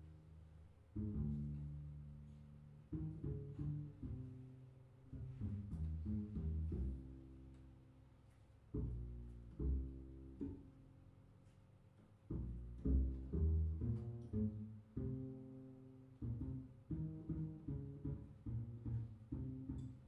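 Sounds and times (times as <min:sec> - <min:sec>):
double bass plucked: 0:00.0 - 0:20.0.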